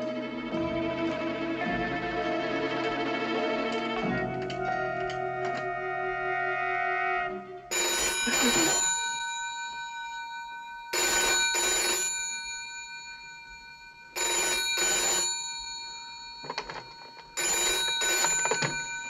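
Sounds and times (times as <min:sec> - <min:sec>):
telephone bell ringing: 0:07.7 - 0:19.0.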